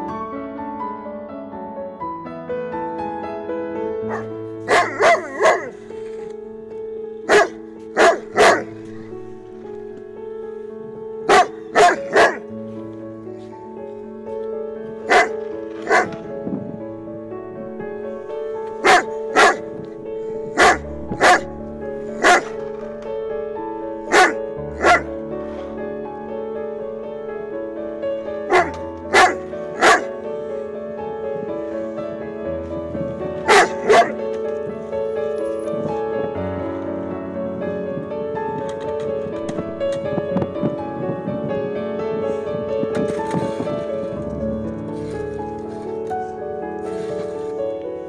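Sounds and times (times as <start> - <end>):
background music with held notes: 0.0 - 48.0
dog barking: 4.1 - 5.8, 7.3 - 8.7, 11.2 - 12.4, 15.1 - 16.2, 18.8 - 19.6, 20.5 - 21.5, 22.2 - 22.6, 24.0 - 25.1, 28.5 - 30.1, 33.5 - 34.2.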